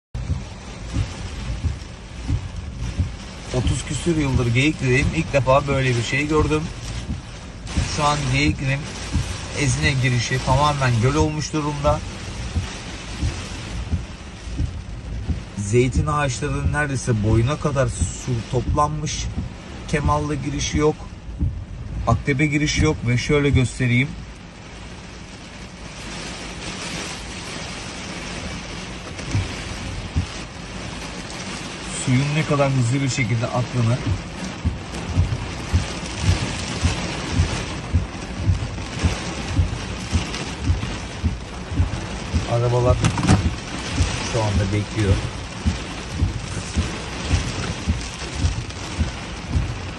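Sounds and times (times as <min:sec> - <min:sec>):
low thumps: 0:00.2 - 0:24.5, 0:28.2 - 0:31.2, 0:33.3 - 0:49.9
floodwater rushing: 0:00.2 - 0:49.9
heavy rain on a car: 0:00.2 - 0:49.9.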